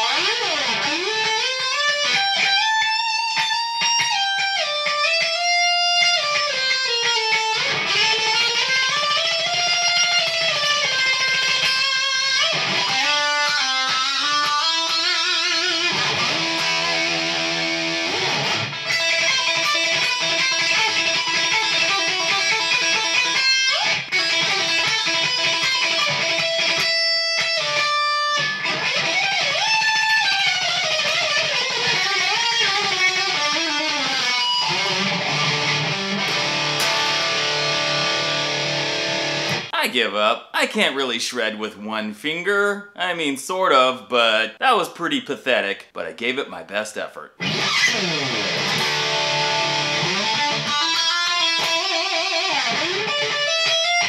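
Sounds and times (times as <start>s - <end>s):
electric guitar shred lead: 0.0s - 39.9s, 47.3s - 54.0s.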